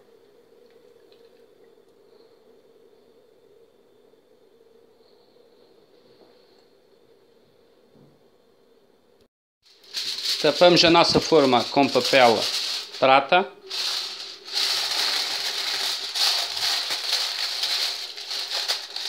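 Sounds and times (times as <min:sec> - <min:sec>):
faint background hum: 0:00.0 - 0:19.0.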